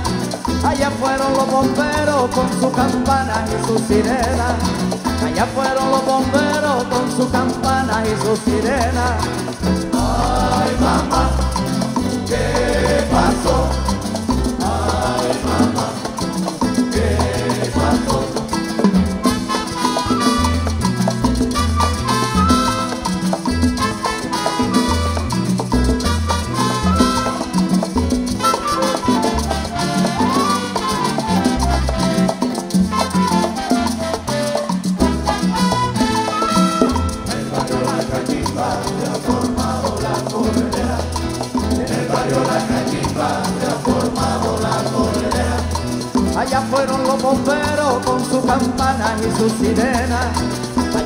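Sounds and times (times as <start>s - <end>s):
acoustic guitars and lutes: 0.0s - 51.0s
conga and bongo rhythm: 0.0s - 51.0s.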